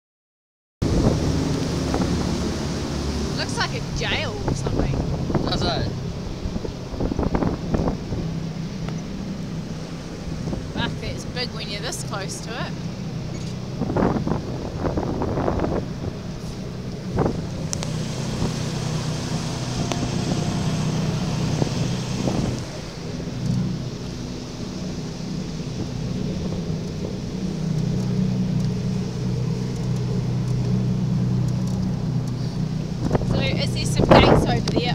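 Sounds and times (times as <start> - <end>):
boat engine droning: 0.8 - 34.9
rushing wind and water: 0.8 - 34.9.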